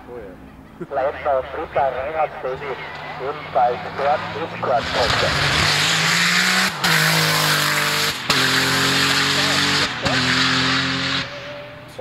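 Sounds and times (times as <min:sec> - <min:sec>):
race car accelerating with upshifts: 0:00.5 - 0:12.0.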